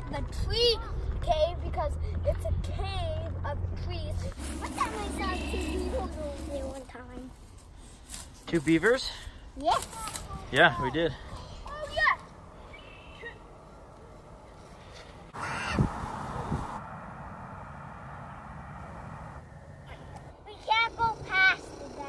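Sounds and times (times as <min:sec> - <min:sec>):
rustling noise: 0:04.2 - 0:08.8.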